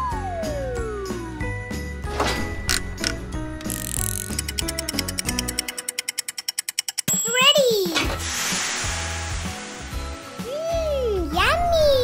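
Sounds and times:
background music: 0:00.0 - 0:12.0
hissing sound effect: 0:08.0 - 0:10.7.

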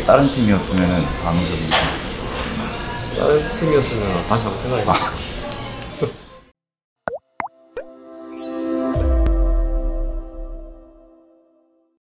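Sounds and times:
cartoon bloop sound effects: 0:07.1 - 0:07.9.

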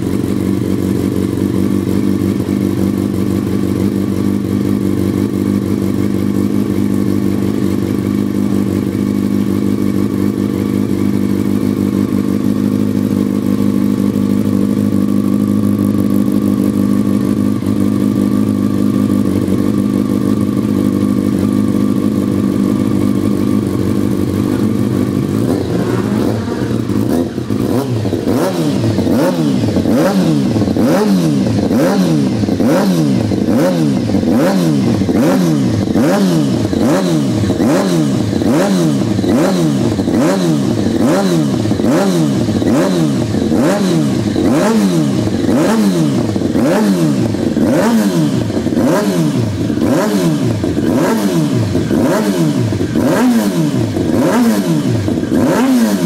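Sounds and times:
motorcycle engine idling: 0:00.0 - 0:56.0
motorcycle engine revving: 0:00.0 - 0:56.0.

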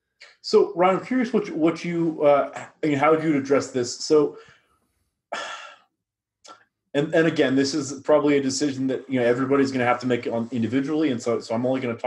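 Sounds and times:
man sighing: 0:05.4 - 0:05.8.

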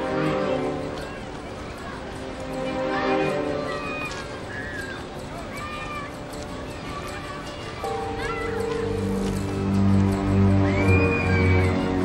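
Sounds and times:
distant children calling: 0:00.6 - 0:12.0.

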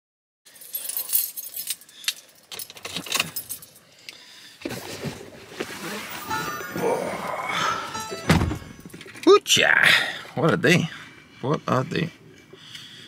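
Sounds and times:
keys jangling: 0:00.5 - 0:03.8.

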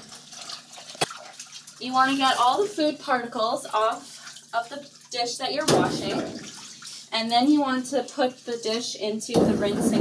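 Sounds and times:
water splashing in metal sink: 0:00.0 - 0:08.6.

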